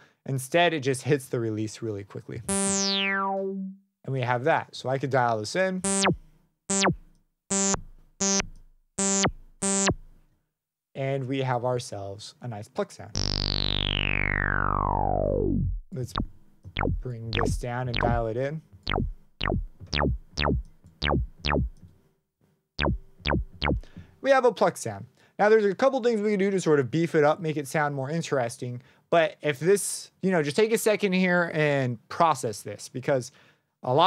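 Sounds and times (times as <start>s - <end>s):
synthesizer pluck notes: 2.5s - 3.8s, 5.8s - 10.0s, 13.2s - 21.8s, 22.8s - 23.9s.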